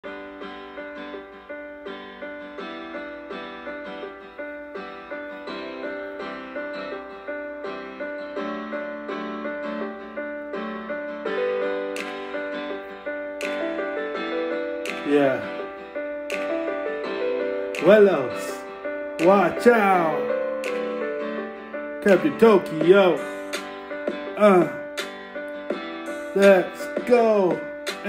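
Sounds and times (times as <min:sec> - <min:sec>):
keyboard playing repeated chords: 0:00.0 - 0:28.0.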